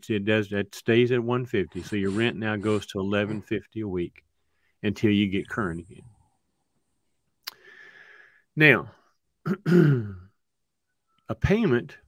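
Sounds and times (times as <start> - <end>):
man clearing his throat: 9.4 - 10.3.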